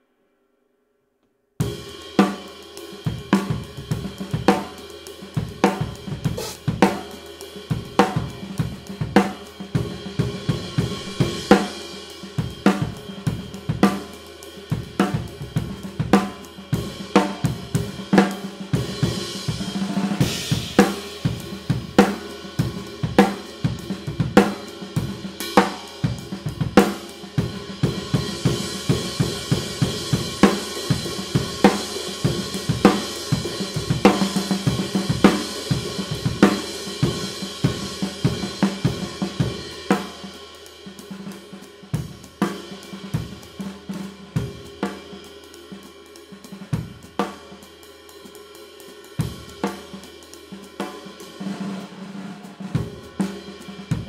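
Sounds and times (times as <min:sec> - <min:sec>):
drum kit groove: 0:01.6 - 0:54.0
ride cymbal wash: 0:06.3 - 0:07.1.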